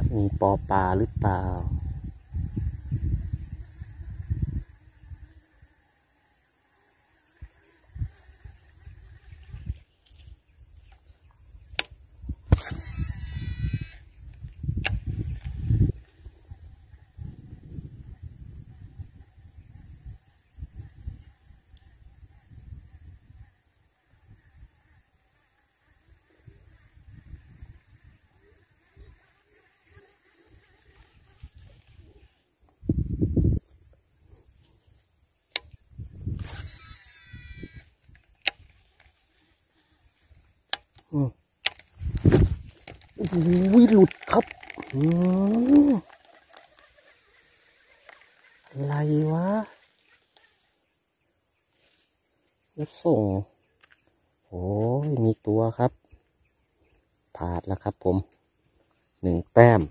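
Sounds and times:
wind buffeting microphone: 0.0s - 5.3s, 11.6s - 21.3s, 26.5s - 28.3s, 32.8s - 33.7s, 35.8s - 36.8s, 41.9s - 46.1s
high insect drone: 0.0s - 59.9s.

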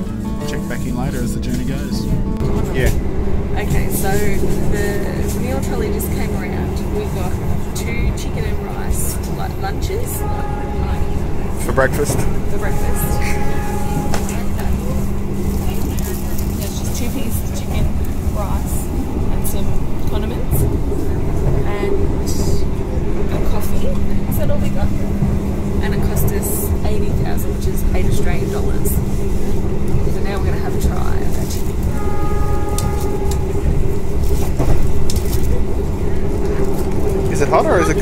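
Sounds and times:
train carriage rumble: 0.0s - 38.0s.

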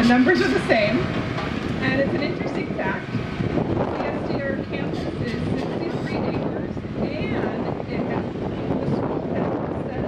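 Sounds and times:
low outdoor rumble: 0.0s - 10.0s
indistinct voices: 3.9s - 10.0s.

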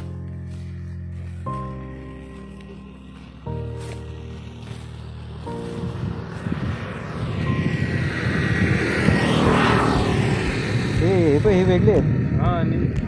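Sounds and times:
vehicle passing on road: 0.0s - 13.0s.

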